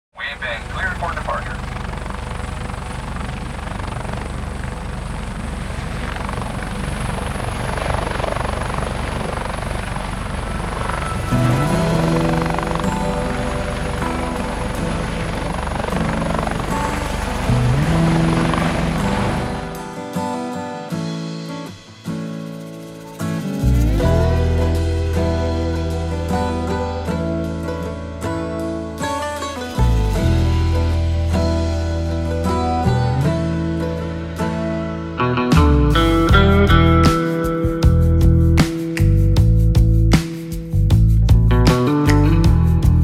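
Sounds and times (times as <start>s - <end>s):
aircraft drone: 0.2s - 28.4s.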